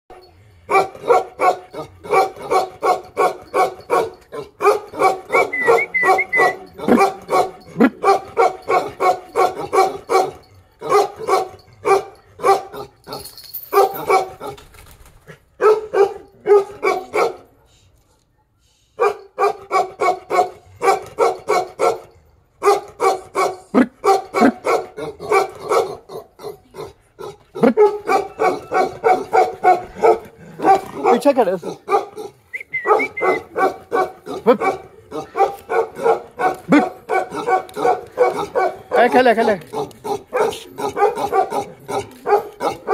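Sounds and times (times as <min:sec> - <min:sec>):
large dog barking: 0:00.1 - 0:14.7, 0:15.3 - 0:17.6, 0:19.0 - 0:42.9.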